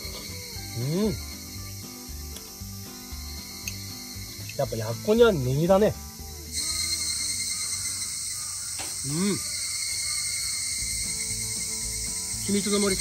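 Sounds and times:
cicadas chorus: 0.0s - 13.0s
man murmuring: 9.0s - 9.5s.

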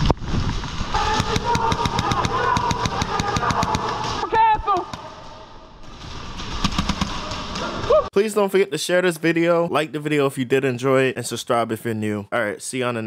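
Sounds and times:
airsoft guns firing: 0.8s - 5.2s
person shouting: 1.0s - 4.9s.

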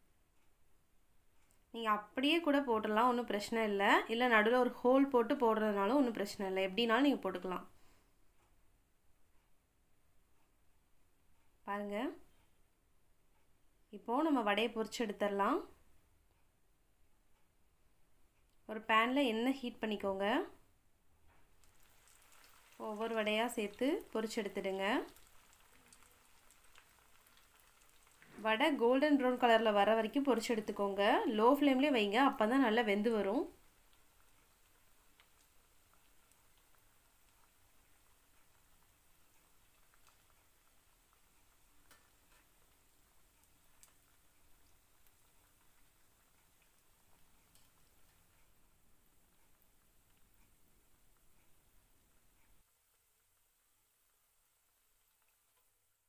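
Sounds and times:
food sizzling in hot oil: 21.6s - 55.9s.

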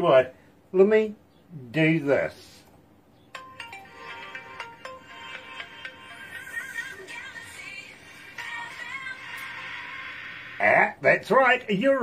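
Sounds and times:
chiming electronic notes: 3.3s - 6.8s
processed sung melody: 3.4s - 10.6s.

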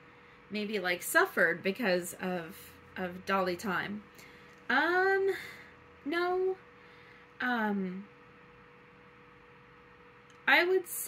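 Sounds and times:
faint high-pitched hum: 0.0s - 11.0s.

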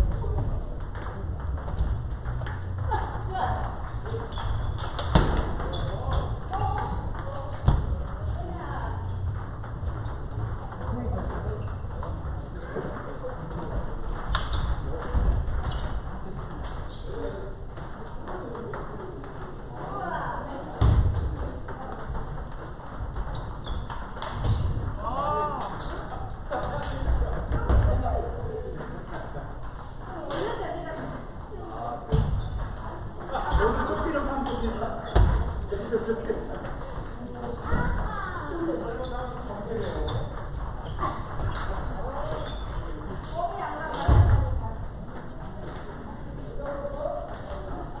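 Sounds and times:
table tennis balls clicking: 0.0s - 48.0s.

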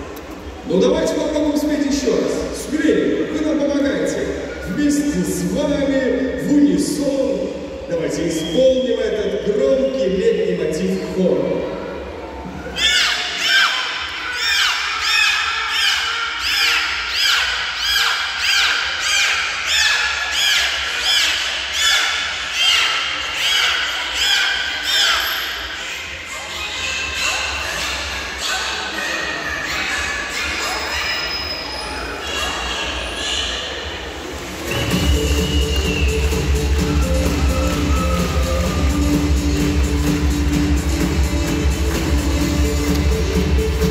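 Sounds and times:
dolphins whistling: 12.7s - 25.7s, 27.2s - 33.8s, 34.6s - 39.6s
show music with heavy beat: 34.7s - 43.9s.

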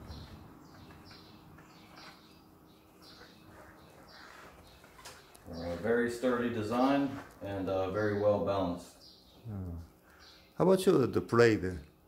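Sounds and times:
small bird chirping: 0.0s - 10.6s.

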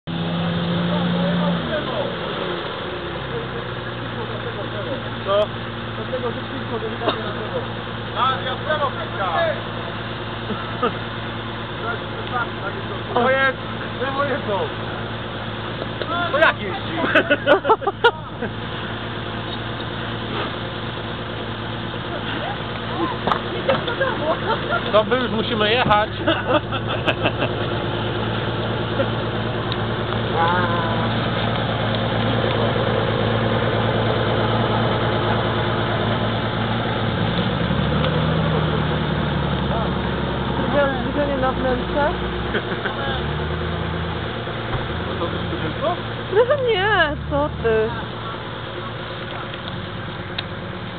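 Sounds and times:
engine running steadily: 0.0s - 50.9s.

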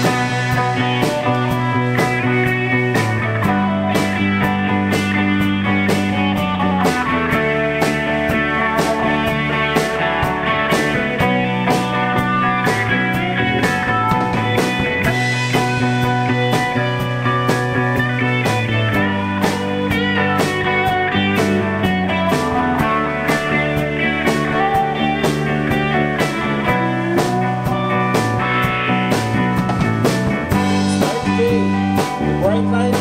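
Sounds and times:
guitars: 0.0s - 33.0s
live rock band playing: 0.0s - 33.0s
steady drum beat: 0.0s - 33.0s.

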